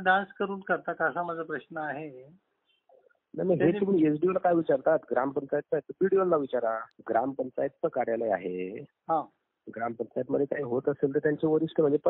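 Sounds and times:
man speaking over telephone: 0:03.4 - 0:12.0.

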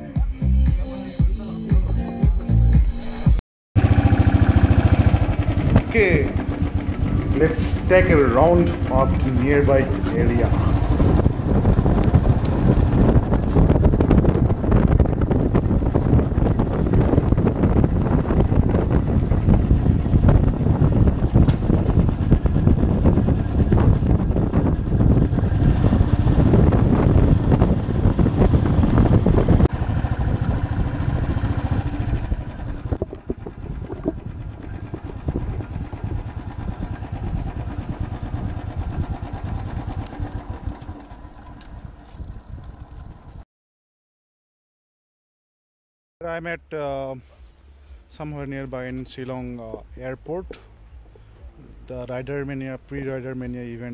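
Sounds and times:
motorcycle engine rumbling: 0:03.8 - 0:43.4, 0:46.2 - 0:53.9.

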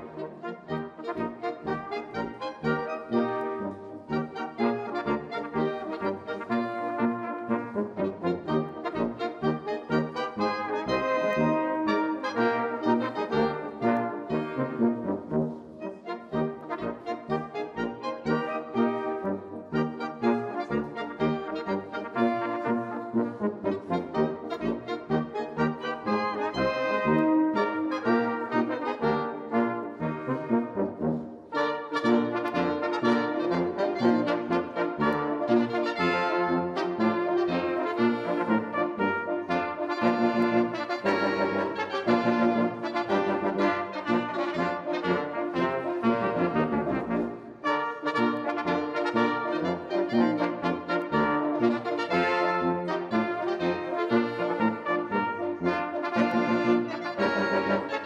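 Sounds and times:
brass band playing: 0:00.0 - 0:58.0.

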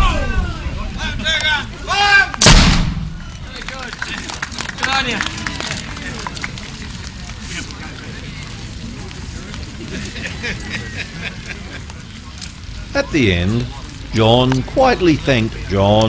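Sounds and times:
artillery gun firing: 0:02.4 - 0:03.3.

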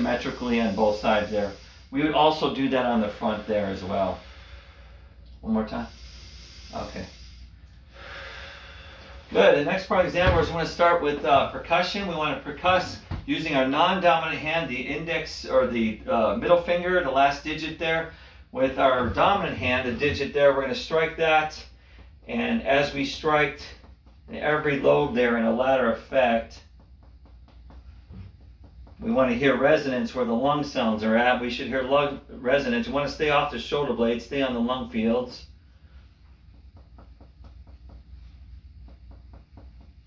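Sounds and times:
steady low hum: 0:00.0 - 0:40.0
person breathing in deeply: 0:03.3 - 0:05.2, 0:05.9 - 0:09.3
finger tapping on chest: 0:21.7 - 0:24.5, 0:26.5 - 0:29.4, 0:36.0 - 0:40.0.

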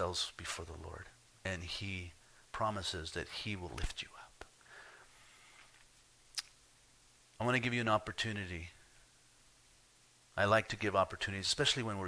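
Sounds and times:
man speaking: 0:00.0 - 0:04.4, 0:07.4 - 0:08.9, 0:10.3 - 0:12.0.

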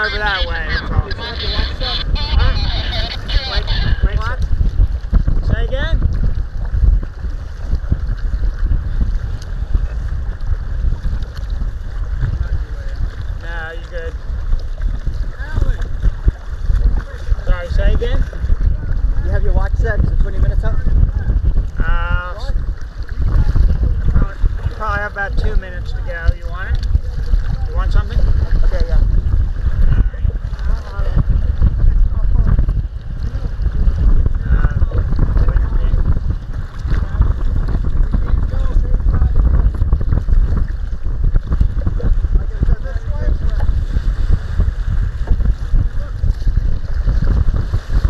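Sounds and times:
waves slapping kayak hull: 0:00.0 - 0:48.0
wind buffeting microphone: 0:00.0 - 0:48.0.

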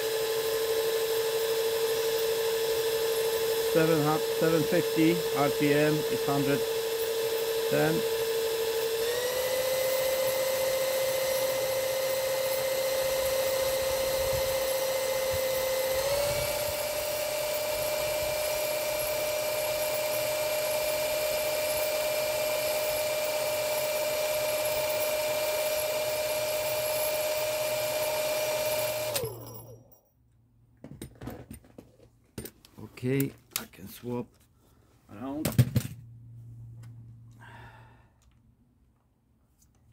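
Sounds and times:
cordless drill motor whine: 0:00.0 - 0:29.8.

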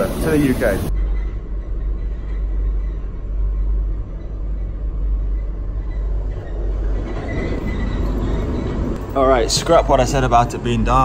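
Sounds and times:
train deep rumble: 0:00.0 - 0:11.0.

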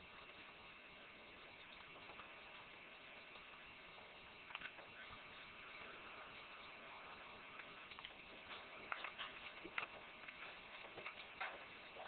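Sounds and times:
puppies suckling clicks: 0:07.5 - 0:12.0.

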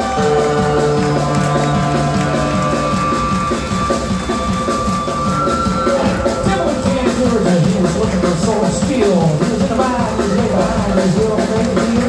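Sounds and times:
drum kit: 0:00.0 - 0:12.0
electric guitar: 0:00.0 - 0:12.0
upright bass: 0:00.0 - 0:12.0.

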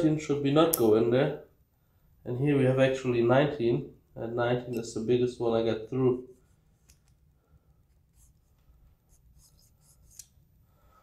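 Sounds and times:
faint scratching: 0:06.2 - 0:10.4.

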